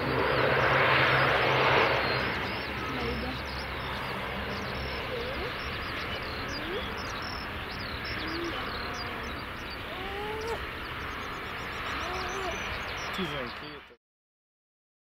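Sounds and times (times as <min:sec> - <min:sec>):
distant turboprop engines rumble: 0:00.0 - 0:14.0
bird chirps and calls: 0:01.4 - 0:14.0.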